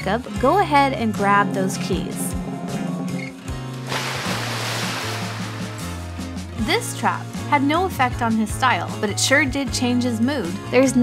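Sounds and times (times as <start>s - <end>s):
background music: 0.0s - 11.0s
water splashing on tabletop: 3.9s - 6.1s.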